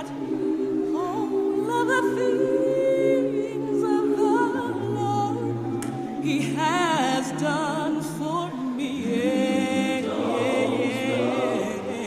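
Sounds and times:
voices singing a cappella: 0.0 - 12.0.

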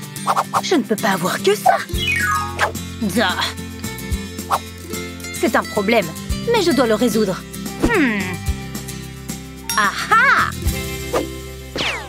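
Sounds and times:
cartoon background music: 0.0 - 12.0
falling glissando effect: 1.9 - 2.7.

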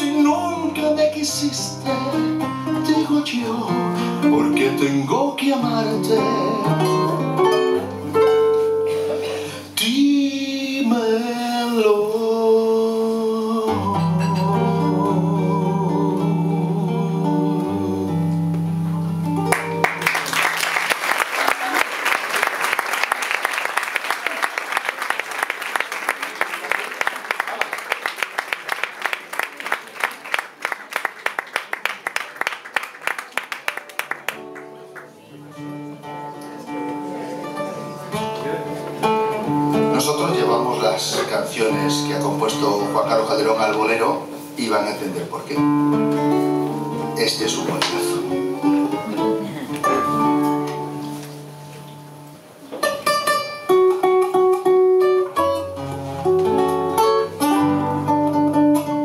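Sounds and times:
classical guitars playing: 0.0 - 20.6, 34.0 - 59.0
audience applause: 19.5 - 35.2.

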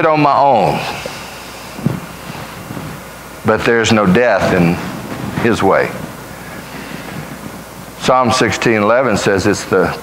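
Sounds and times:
room hiss: 0.0 - 10.0.

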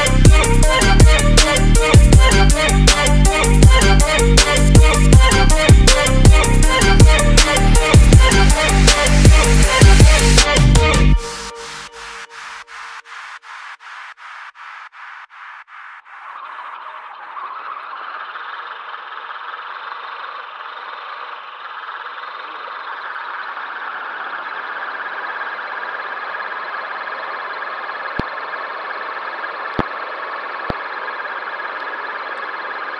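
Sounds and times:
electric motor and gearbox running: 0.0 - 11.6.

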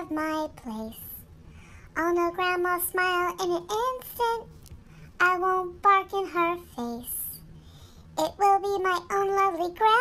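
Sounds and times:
child-like voice singing: 5.2 - 7.4, 8.2 - 10.0.

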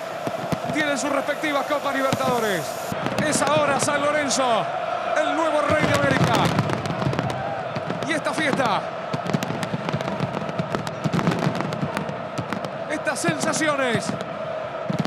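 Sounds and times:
fireworks bangs and crackles: 0.0 - 4.4, 5.6 - 15.0
noisy crowd voices: 0.0 - 15.0.

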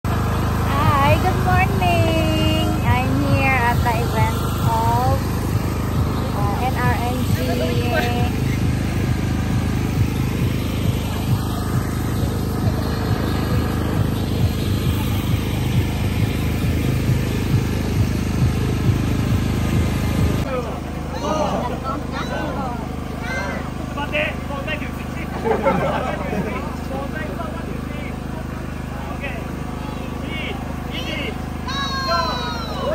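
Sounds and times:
loud low rumble: 0.1 - 21.1
people's voices: 0.6 - 17.5, 20.4 - 32.9.

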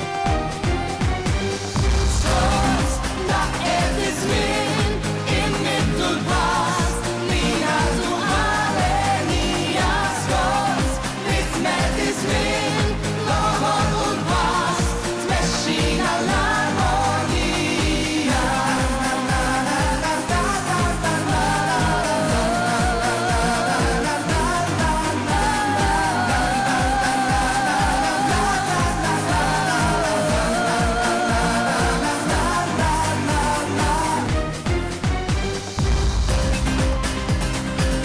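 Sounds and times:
amplified music with beat: 0.0 - 38.0
woman singing into microphone: 2.1 - 34.4.

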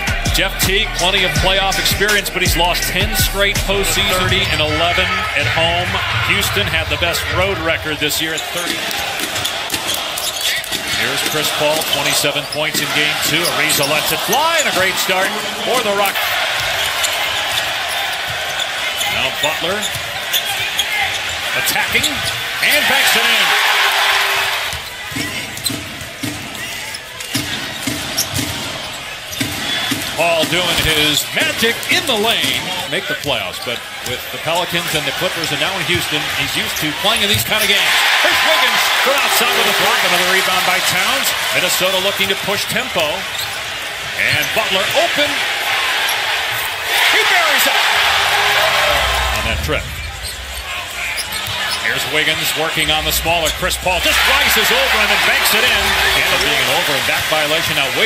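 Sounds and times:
crowd murmur: 0.0 - 12.3, 43.8 - 58.0
arena crowd cheering: 0.0 - 58.0.

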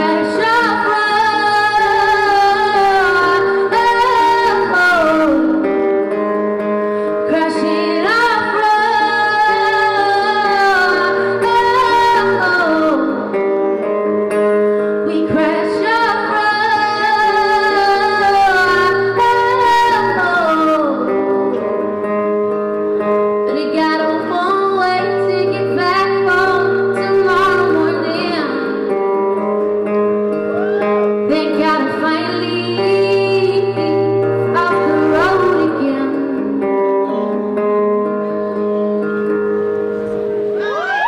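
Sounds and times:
woman singing: 0.0 - 22.4, 23.1 - 29.5, 30.8 - 38.8
acoustic guitar: 0.0 - 41.0.

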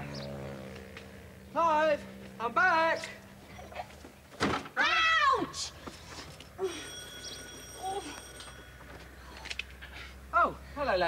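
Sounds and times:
thud: 4.3 - 4.7.

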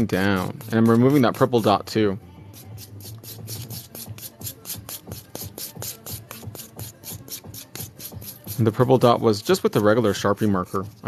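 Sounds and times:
nail buffer rasping on nail: 2.5 - 9.6.

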